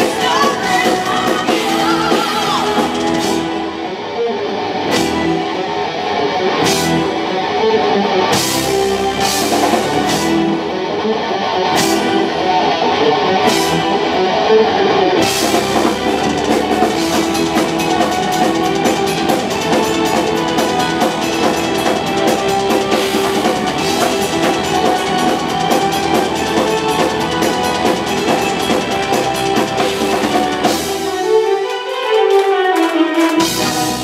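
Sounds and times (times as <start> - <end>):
metal band playing loud: 0.0 - 34.0.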